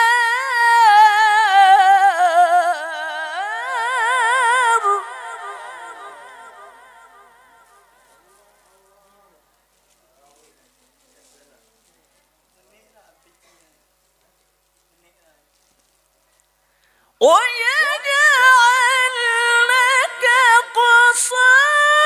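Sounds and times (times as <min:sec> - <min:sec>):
faint indistinct voices: 0:06.0 - 0:16.6.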